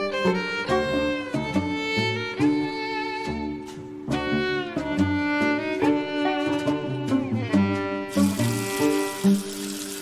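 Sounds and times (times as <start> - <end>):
bowed string music: 0.0 - 10.0
tap water running into sink: 8.1 - 10.0.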